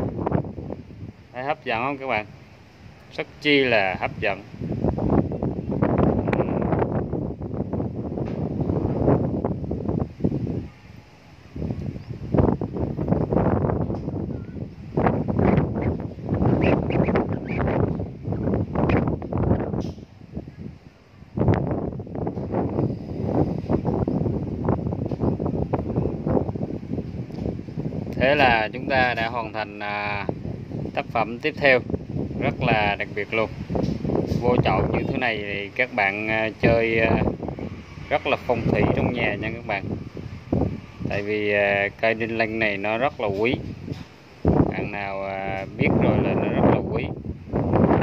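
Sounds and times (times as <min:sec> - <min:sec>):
gusty wind on microphone: 0:00.0 - 0:48.0.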